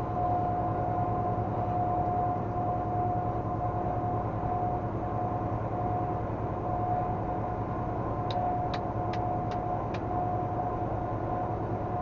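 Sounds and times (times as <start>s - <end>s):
vehicle road and engine noise: 6.2s - 12.0s
high whine: 8.2s - 11.0s.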